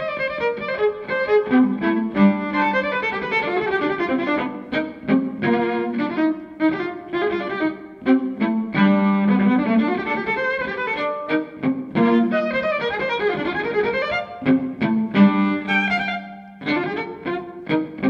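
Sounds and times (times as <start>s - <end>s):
solo violin melody: 0.0s - 18.0s.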